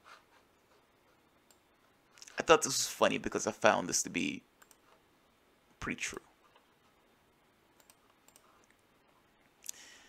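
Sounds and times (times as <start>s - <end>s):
faint computer mouse clicks: 7.8s - 8.8s.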